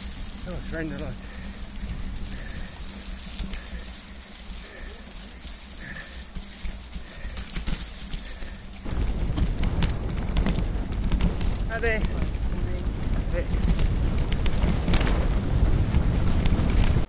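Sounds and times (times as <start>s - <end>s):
bike clicks and rattles: 0.0s - 17.0s
bike tyres on muddy trail: 0.0s - 17.0s
wind rumbling on microphone: 0.0s - 17.0s.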